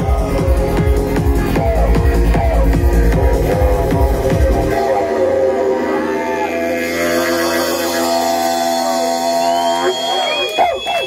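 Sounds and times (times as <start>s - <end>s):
electronic synth chord: 0.0s - 9.8s
crowd cheering and shouting: 0.0s - 11.0s
long high whistle: 8.4s - 11.0s.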